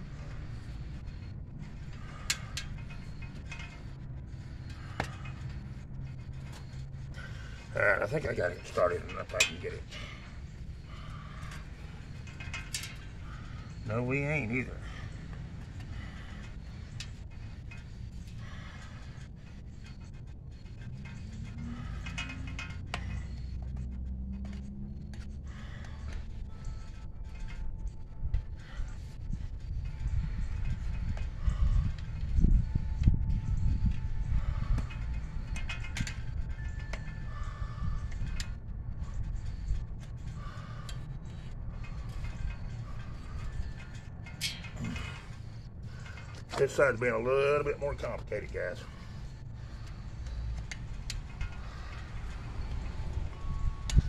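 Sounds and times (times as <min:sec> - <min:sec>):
low rumble: 0:14.7 - 0:54.0
clicks and scrapes on bicycle rim: 0:41.8 - 0:46.8.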